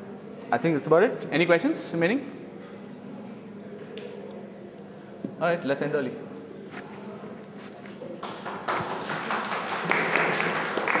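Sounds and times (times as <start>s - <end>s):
audience applauding: 8.2s - 11.0s.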